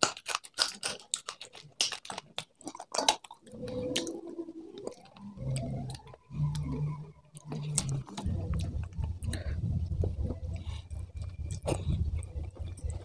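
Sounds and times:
chewing food: 0:00.0 - 0:13.0
low steady hum: 0:03.5 - 0:13.0.

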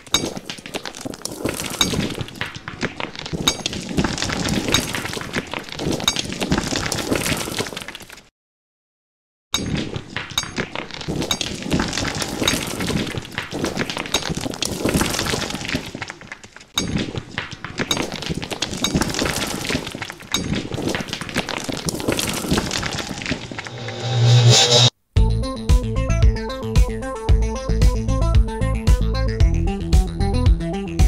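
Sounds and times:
crackling glass shattering effects: 0:00.0 - 0:08.3, 0:09.6 - 0:24.4.

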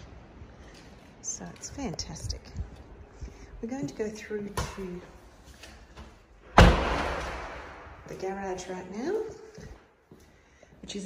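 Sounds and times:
loud thump: 0:06.5 - 0:07.9.

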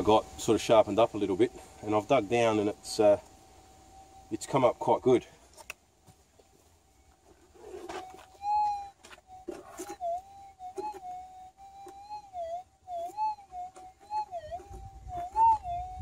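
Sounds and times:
metal detector wavering hum: 0:00.0 - 0:05.3, 0:06.3 - 0:16.0.

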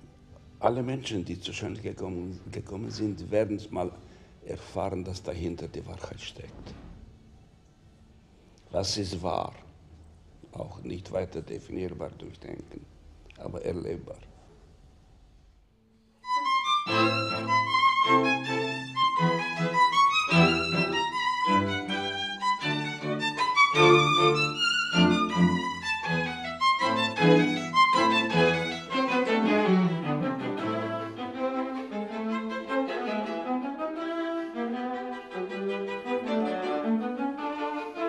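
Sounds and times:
string quartet playing: 0:16.2 - 0:38.0.

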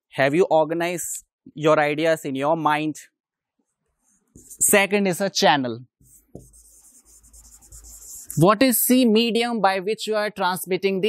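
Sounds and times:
marker scratching on whiteboard: 0:03.6 - 0:04.8, 0:06.0 - 0:08.5.

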